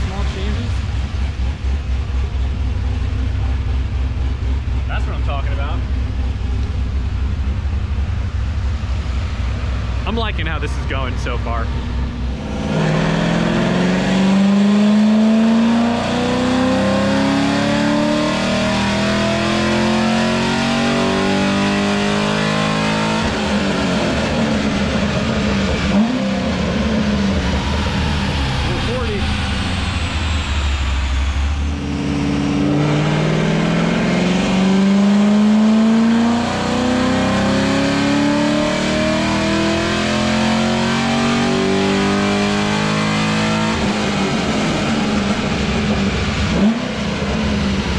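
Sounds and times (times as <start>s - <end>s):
car engine revving: 0.0s - 47.9s.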